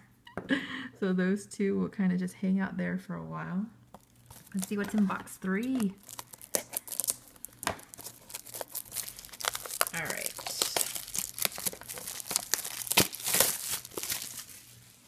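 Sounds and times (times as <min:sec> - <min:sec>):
plastic wrap crinkling and tearing: 0:03.9 - 0:15.0.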